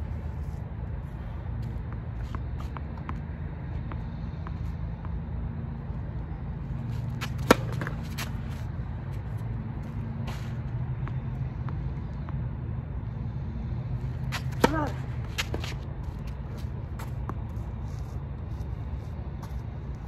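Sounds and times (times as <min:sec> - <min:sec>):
tennis ball bouncing on court: 0:01.6 - 0:05.8, 0:07.0 - 0:09.5, 0:10.1 - 0:12.6, 0:14.2 - 0:17.6
racket hitting tennis ball: 0:06.9 - 0:09.4, 0:14.1 - 0:17.6.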